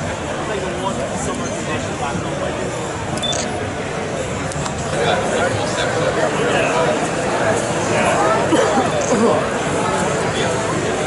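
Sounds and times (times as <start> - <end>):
babble of crowd voices: 0.0 - 11.0.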